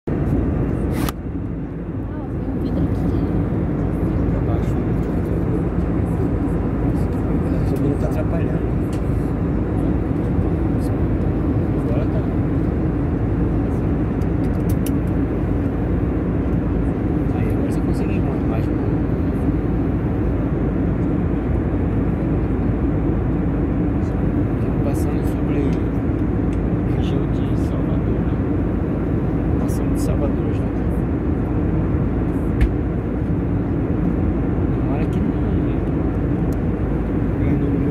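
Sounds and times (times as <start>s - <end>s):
airliner cabin engine drone: 0.1s - 37.9s.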